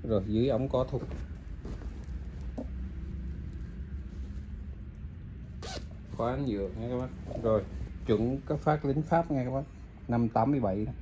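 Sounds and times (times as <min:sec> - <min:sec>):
cloth rustling: 0:00.0 - 0:09.2
steady low hum: 0:00.0 - 0:11.0.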